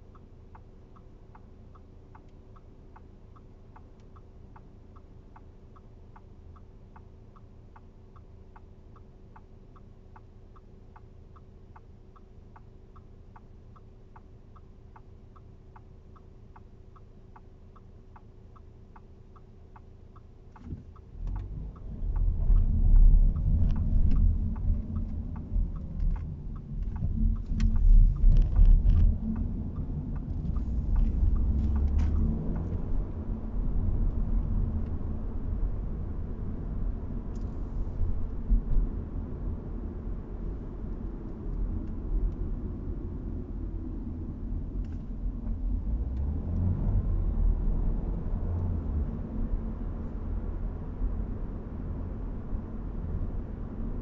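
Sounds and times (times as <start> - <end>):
light regular ticking: 0.0 - 53.9
car engine and road rumble: 0.0 - 54.0.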